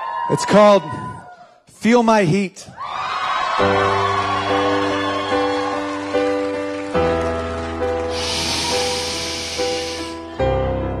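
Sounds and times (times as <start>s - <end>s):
steady hiss: 8.1s - 10.2s.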